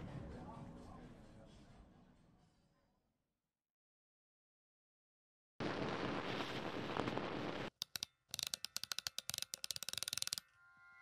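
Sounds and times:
static-like hiss: 5.6 - 7.7.

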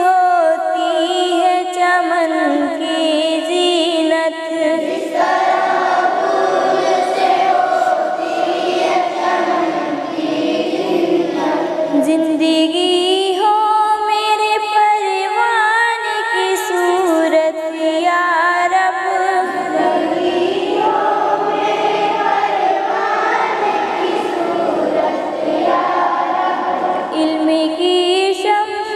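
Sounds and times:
person singing devotional song: 0.0 - 28.9
wordless choir-like voices: 4.1 - 13.5, 18.7 - 28.9.

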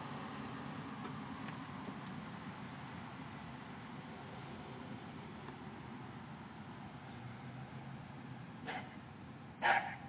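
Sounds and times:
outdoor background hiss: 0.0 - 10.0
faint dog bark: 8.6 - 9.0, 9.6 - 10.0.

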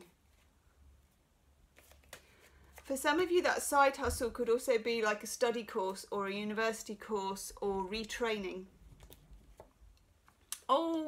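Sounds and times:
cards shuffling and rustling: 0.2 - 3.4.

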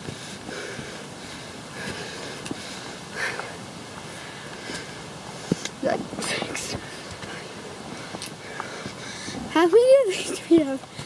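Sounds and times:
person breathing hard: 0.0 - 9.5.

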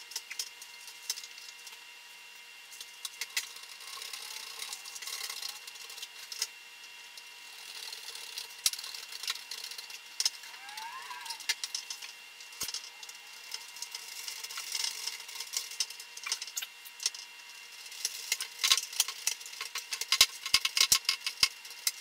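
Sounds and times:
faint high whine: 0.0 - 18.3.

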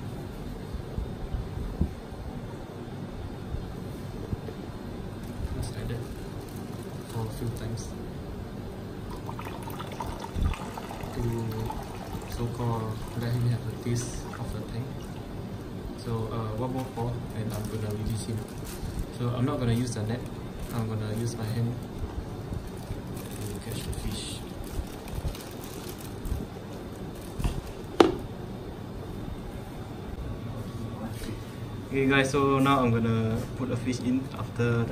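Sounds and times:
water pouring into plastic bag: 9.1 - 15.3, 22.7 - 26.4
plastic rustling: 16.6 - 22.0, 22.6 - 28.2
plastic cup knocking in bucket: 28.0 - 28.2.

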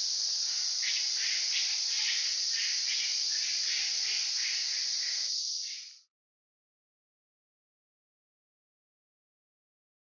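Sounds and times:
insects buzzing: 0.0 - 6.0
insects chirping: 0.0 - 6.1.

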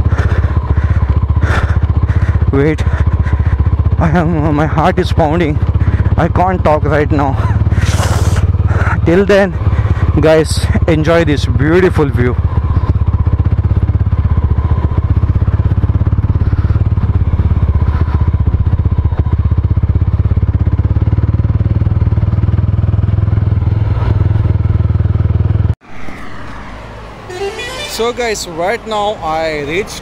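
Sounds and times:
motorcycle engine running: 0.0 - 25.8
roadside traffic noise: 0.0 - 30.0.

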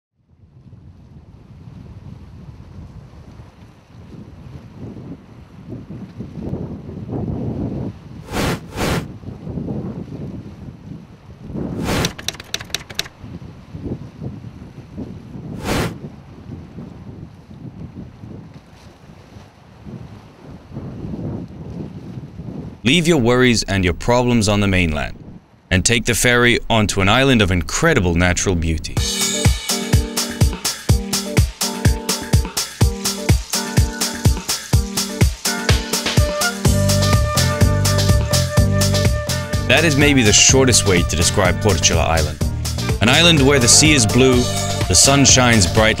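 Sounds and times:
sharp clicks: 11.8 - 13.2.

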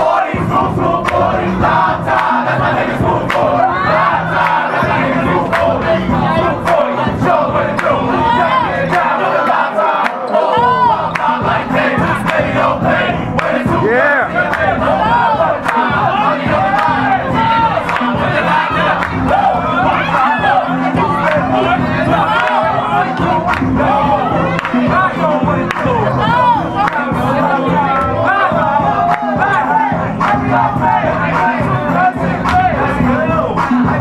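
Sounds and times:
crowd yelling and hollering: 0.0 - 34.0
music: 0.0 - 34.0.

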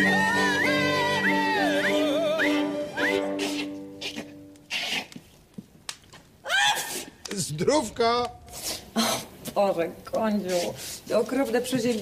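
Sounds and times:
music: 0.0 - 4.6
woman blowing her nose: 3.2 - 5.1.

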